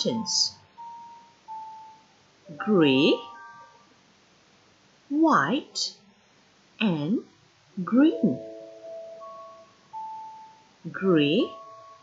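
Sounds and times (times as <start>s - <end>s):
soft electronic chime notes: 0.7s - 3.9s, 8.1s - 12.0s.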